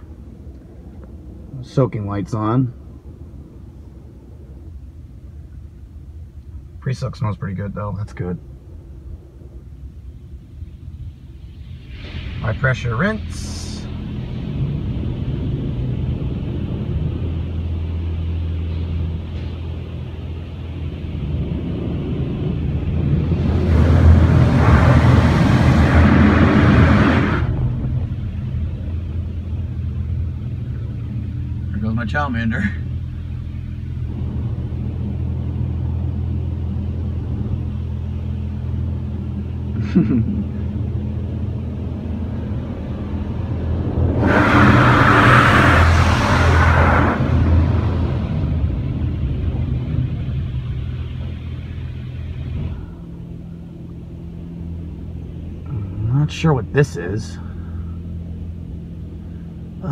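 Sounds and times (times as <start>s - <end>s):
muffled low rumble inside truck cab: 0.0s - 59.9s
steady low hum: 0.0s - 59.9s.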